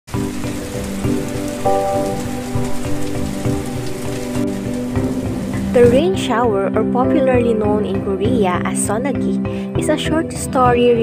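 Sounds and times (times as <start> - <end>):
rain splashing on water: 0.1 - 8.9
slow music of held notes: 0.1 - 11.0.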